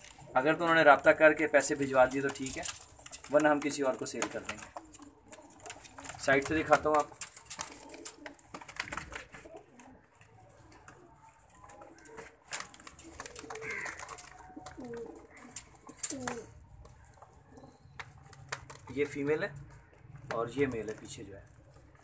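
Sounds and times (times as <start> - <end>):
pigeons cooing: 0.0 - 22.0
sharp clicks and rustling: 2.0 - 22.0.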